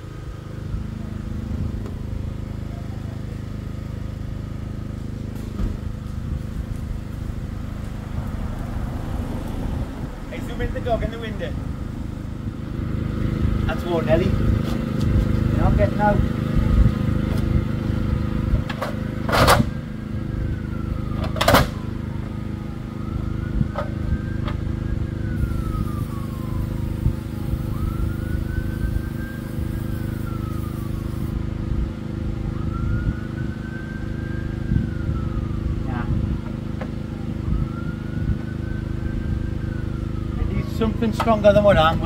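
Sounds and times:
vehicle engine idling: 0.0 - 42.0.

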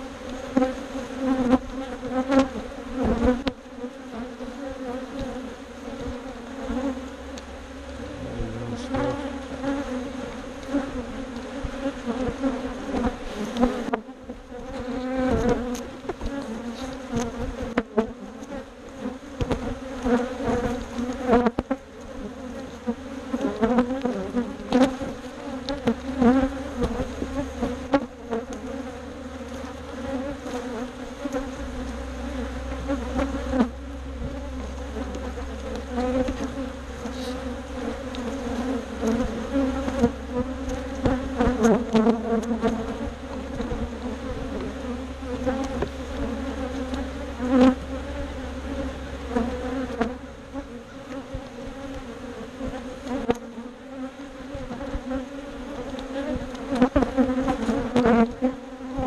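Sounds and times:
honeybees buzzing: 0.0 - 59.0.

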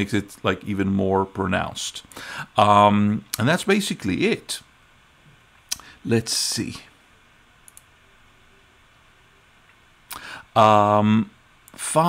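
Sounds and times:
computer mouse clicks: 7.6 - 7.9.

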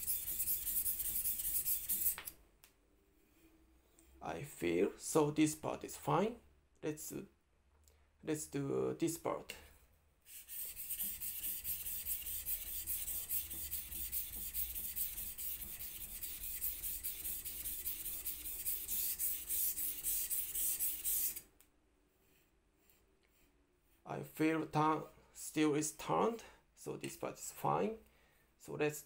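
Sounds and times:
knife rasping on whetstone: 0.0 - 2.2, 10.3 - 21.4.

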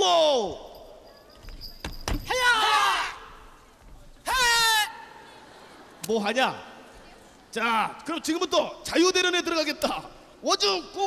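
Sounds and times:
people shouting martial arts yells: 2.3 - 3.4.

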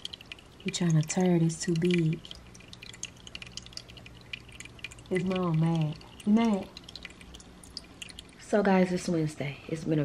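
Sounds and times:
low steady hum: 0.0 - 10.0
water dripping and trickling: 0.0 - 10.0.

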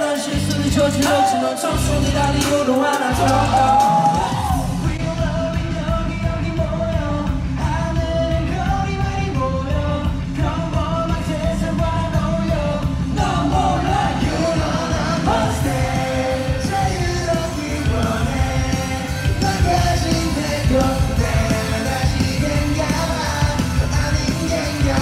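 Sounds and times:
live pop song over loudspeakers: 0.0 - 25.0.

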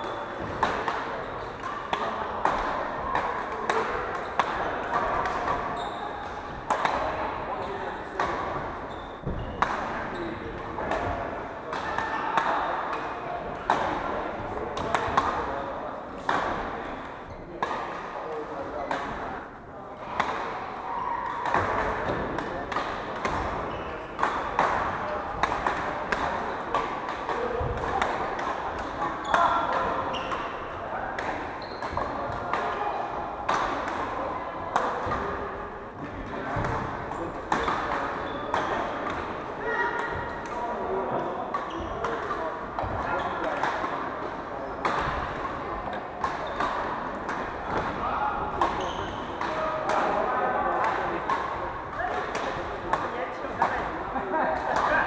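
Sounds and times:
rackets hitting shuttlecocks: 0.0 - 7.3, 8.0 - 15.5, 16.2 - 17.0, 20.2 - 32.8, 33.4 - 35.4, 36.0 - 55.0.

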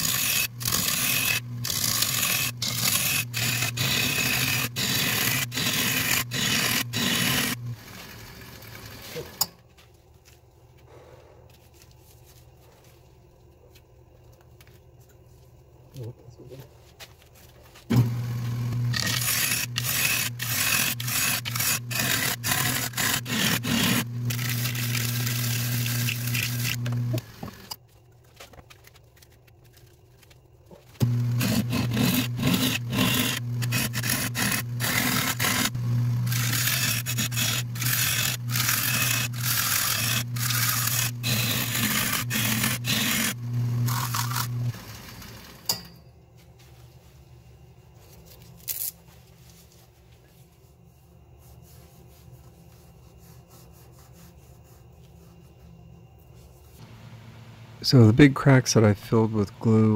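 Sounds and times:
turning tool scraping wood: 0.0 - 9.4, 17.9 - 27.8, 31.0 - 45.4
wood lathe motor hum: 0.0 - 9.4, 17.9 - 27.8, 31.0 - 45.7.

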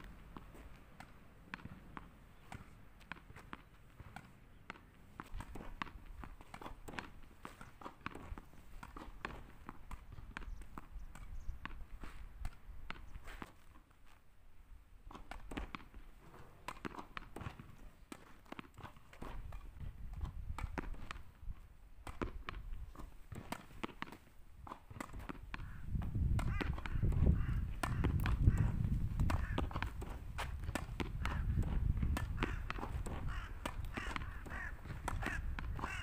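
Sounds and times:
footsteps: 0.0 - 10.4
tennis ball popping off racket: 0.0 - 13.7, 15.1 - 21.3, 22.0 - 36.0
ball bouncing on asphalt: 0.0 - 14.3, 14.9 - 36.0.

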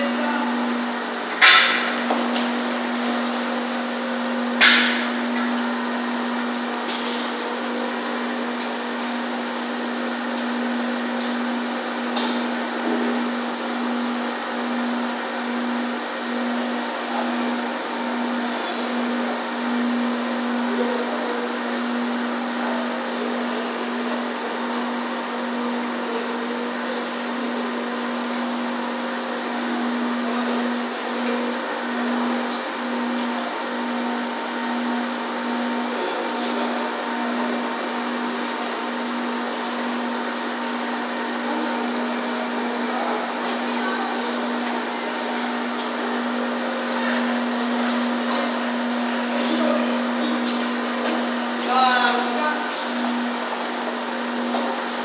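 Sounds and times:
aerated water churning in tanks: 0.0 - 55.0
machinery hum: 0.0 - 55.0.

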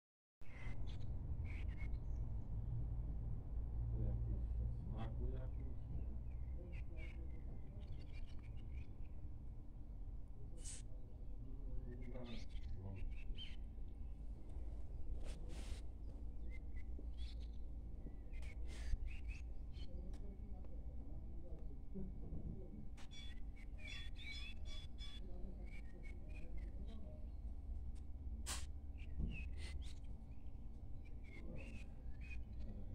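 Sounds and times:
birds chirping: 0.5 - 2.3, 5.0 - 9.3, 11.5 - 14.2, 16.0 - 20.6, 23.0 - 27.5, 28.9 - 32.9.

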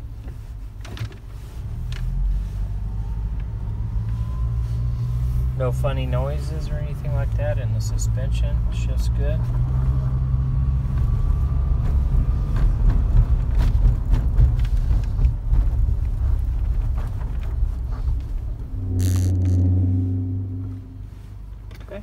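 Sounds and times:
car interior road and engine rumble: 0.0 - 22.0.

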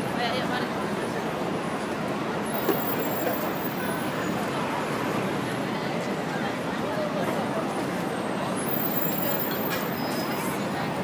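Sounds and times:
crowd chatter: 0.0 - 11.0
traffic noise: 0.0 - 11.0.

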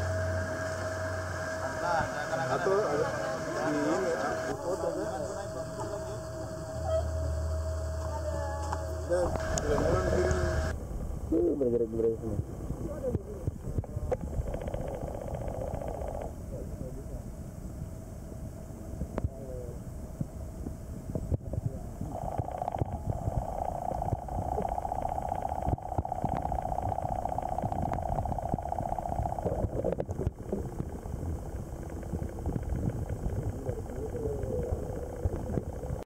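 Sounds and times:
steady buzzing hum: 0.0 - 36.0
low rumbling underwater noise: 4.4 - 19.4, 20.0 - 36.0.

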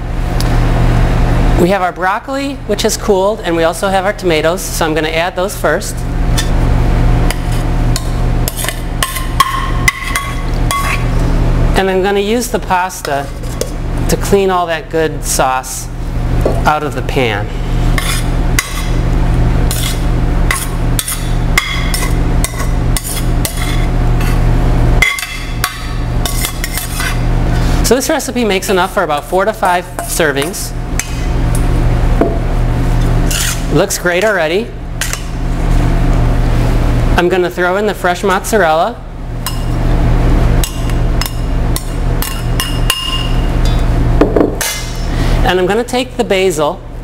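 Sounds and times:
steady low hum: 0.0 - 47.0
metal spoon scraping steel pan: 8.5 - 11.1, 17.9 - 18.9, 19.7 - 21.3, 21.9 - 24.4, 26.2 - 27.2, 33.3 - 33.7.

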